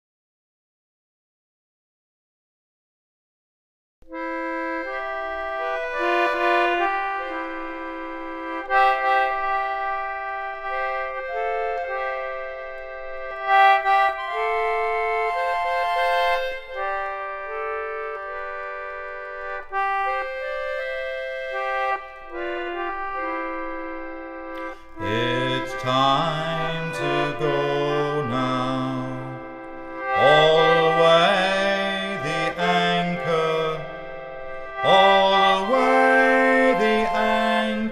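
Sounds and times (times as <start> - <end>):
concertina playing held chords: 4.1 - 37.9
person singing: 24.6 - 37.9.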